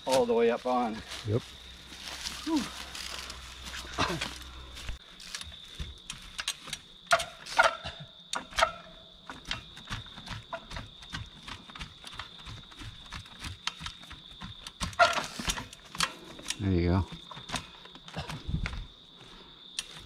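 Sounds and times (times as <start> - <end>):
bike chain rattling: 2.0 - 18.8.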